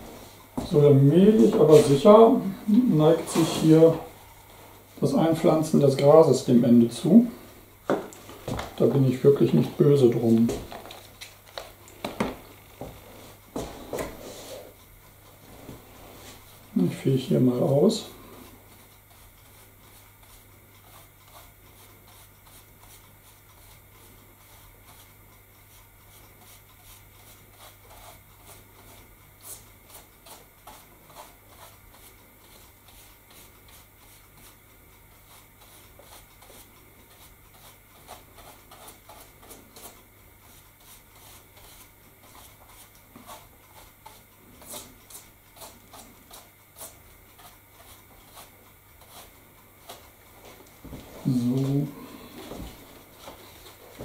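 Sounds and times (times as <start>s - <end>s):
brush scratching and tapping: 0.0s - 7.1s, 7.9s - 54.0s
steady low hum: 0.0s - 54.0s.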